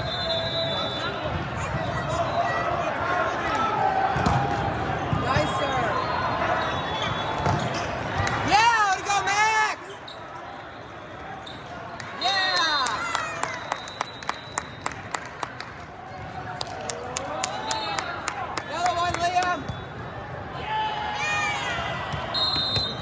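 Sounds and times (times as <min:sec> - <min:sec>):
crowd and player chatter: 0:00.0 - 0:23.0
volleyball hits: 0:04.1 - 0:05.6, 0:07.4 - 0:08.6.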